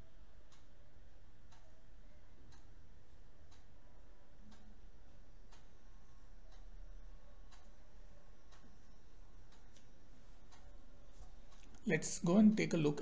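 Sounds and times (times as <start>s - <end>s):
low steady hum: 0.0s - 13.0s
faint regular ticks: 7.5s - 7.8s, 8.5s - 11.9s.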